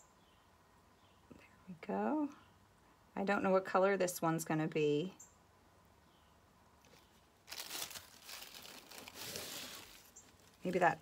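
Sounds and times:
plastic sheet crinkling: 6.9 - 10.9.

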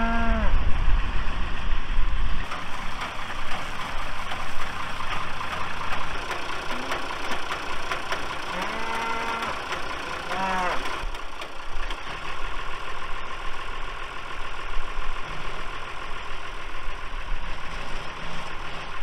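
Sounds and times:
cattle mooing: 0.0 - 0.6, 8.5 - 9.6, 10.3 - 10.9
tractor engine running: 0.0 - 19.0.

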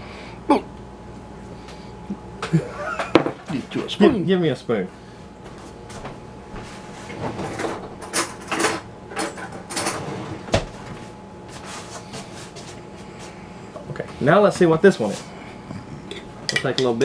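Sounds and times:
kitchen drawer clattering: 7.2 - 10.7.

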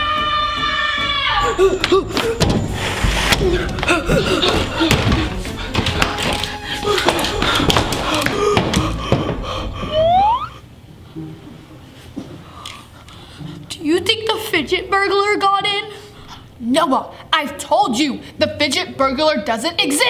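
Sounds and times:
suspenseful background music: 0.1 - 10.6
sharp knocks and thuds: 2.4 - 6.4
rising sweep: 9.9 - 10.6.

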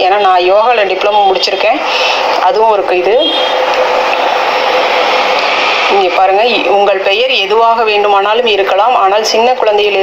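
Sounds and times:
loud rushing hiss: 3.2 - 6.6.

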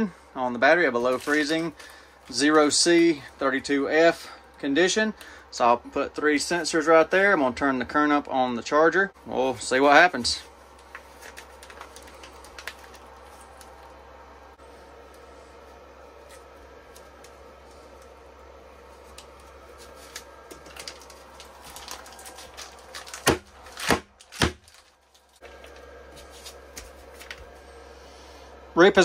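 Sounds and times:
steady low hum: 0.0 - 29.0
plastic ice pack crinkling: 1.0 - 2.4, 10.7 - 14.0, 19.0 - 25.8.

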